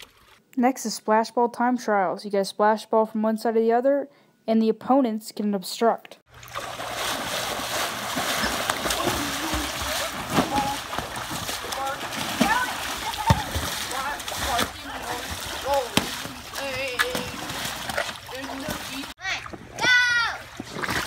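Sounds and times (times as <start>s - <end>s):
pool water splashing: 6.3s - 21.0s
children shouting: 12.4s - 14.5s.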